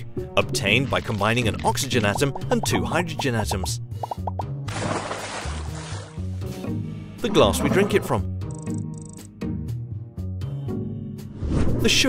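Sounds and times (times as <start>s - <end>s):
background music: 0.0s - 12.0s
fizzing bubbling rush: 0.6s - 6.2s
quick plops: 4.0s - 6.2s.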